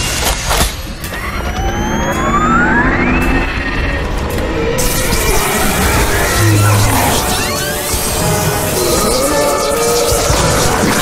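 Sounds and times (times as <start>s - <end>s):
rising whine: 1.0s - 11.0s.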